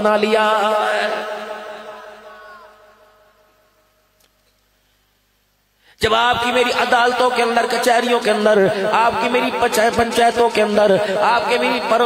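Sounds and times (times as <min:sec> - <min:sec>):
man chanting through microphone: 0:00.0 - 0:03.2, 0:06.0 - 0:12.0.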